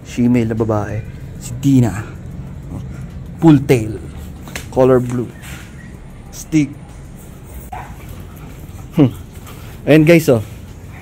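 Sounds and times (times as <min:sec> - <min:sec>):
steady background noise: 0:00.0 - 0:11.0
puppy whimpering: 0:05.3 - 0:06.1.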